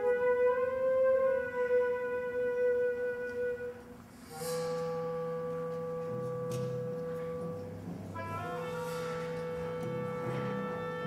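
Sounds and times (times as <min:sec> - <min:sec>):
symphonic band music: 0:00.0 - 0:11.0.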